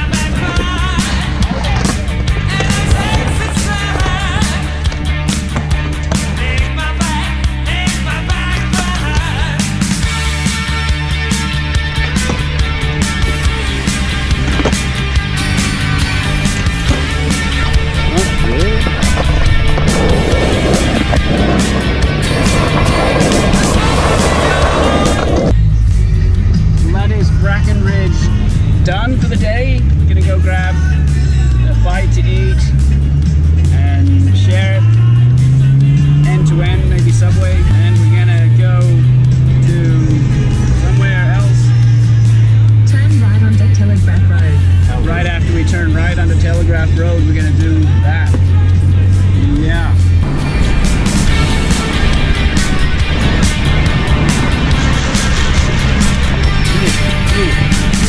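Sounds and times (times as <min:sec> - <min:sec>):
voices: 0:00.0 - 0:09.8, 0:12.0 - 0:25.6, 0:33.6 - 0:50.2, 0:51.6 - 0:58.0
background music: 0:00.0 - 0:58.0.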